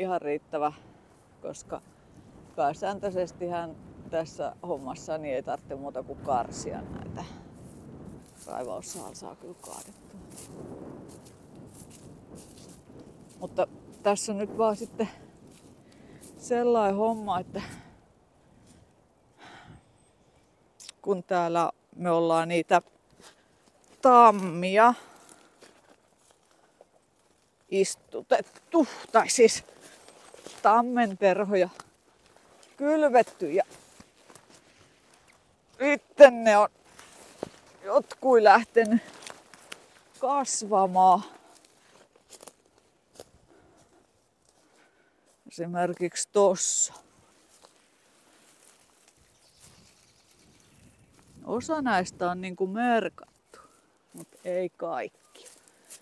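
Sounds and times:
footsteps on dry twigs: 0:00.8 - 0:04.0, 0:06.7 - 0:19.0, 0:22.7 - 0:56.0.

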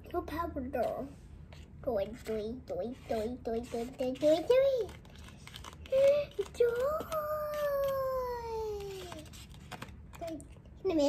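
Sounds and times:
child singing playful vocal: 0:05.9 - 0:09.2.

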